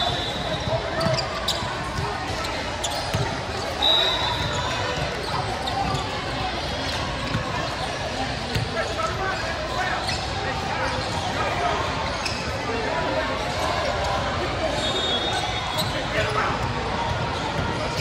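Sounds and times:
indistinct chatter in hall: 0.0s - 18.0s
brief high squeal: 3.8s - 4.8s.

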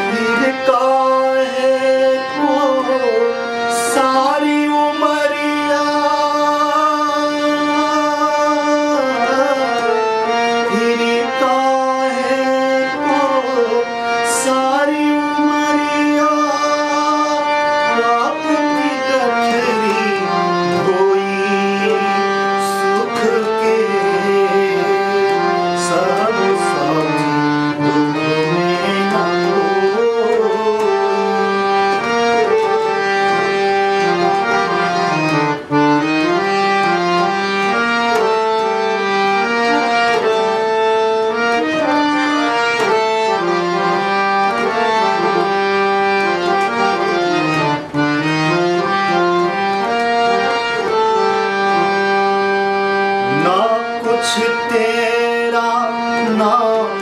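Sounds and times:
harmonium melody: 0.0s - 57.0s.

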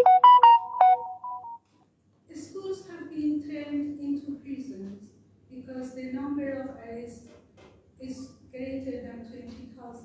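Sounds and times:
short electronic melody: 0.0s - 1.6s
people talking: 2.3s - 7.3s, 8.0s - 10.0s.

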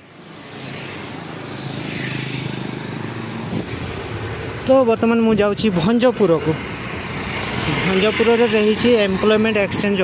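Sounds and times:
tyres on road: 0.0s - 10.0s.

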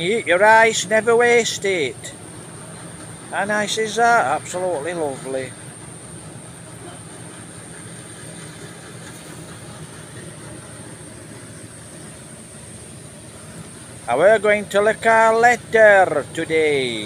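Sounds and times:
faint high whine: 0.0s - 17.0s
thresher engine droning: 0.0s - 17.0s.

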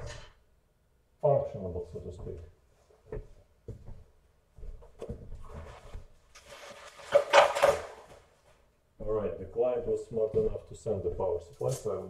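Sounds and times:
things rubbing and clattering: 5.4s - 8.4s.

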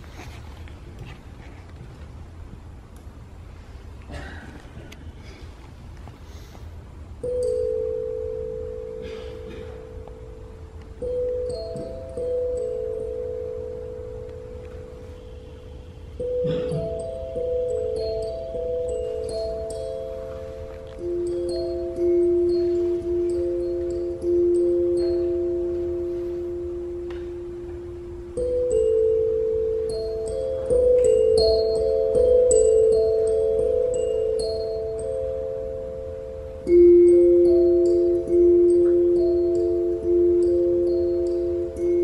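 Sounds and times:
bell-like note ringing: 7.2s - 42.0s.

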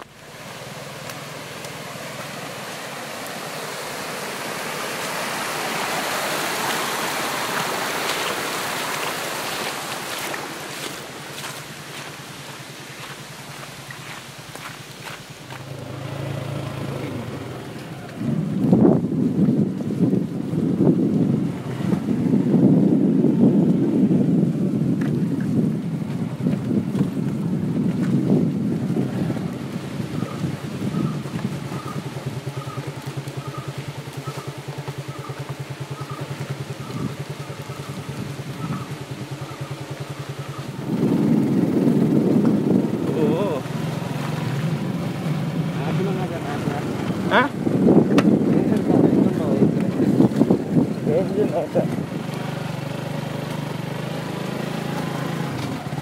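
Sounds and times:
wind rumbling on microphone: 0.0s - 56.0s
microphone handling noise: 40.8s - 43.2s, 47.7s - 51.0s.

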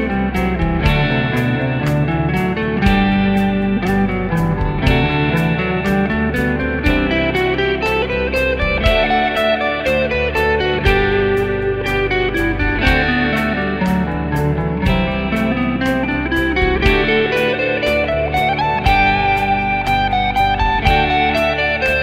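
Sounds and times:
backing track with drum beat: 0.0s - 22.0s
electric guitar playing a scale: 0.0s - 22.0s.

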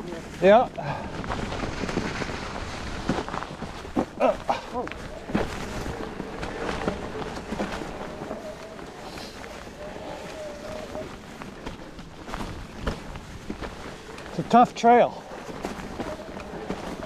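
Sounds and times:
bike rattling over rocks: 0.0s - 17.0s.

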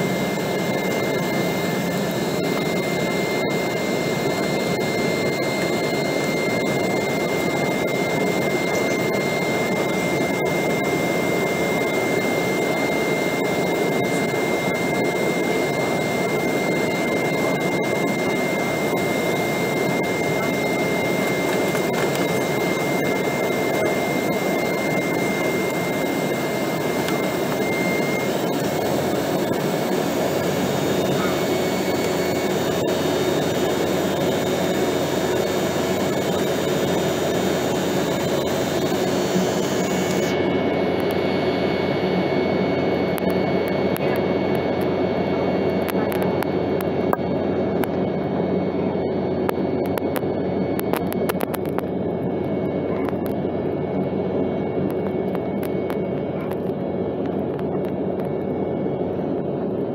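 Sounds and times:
airliner cabin engine noise: 0.0s - 59.9s
thin steady whine: 0.0s - 59.9s.

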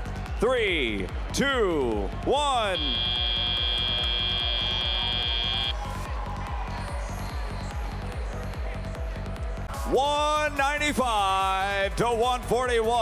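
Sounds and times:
arena music with steady beat: 0.0s - 13.0s
buzzer high tone: 2.7s - 5.7s.

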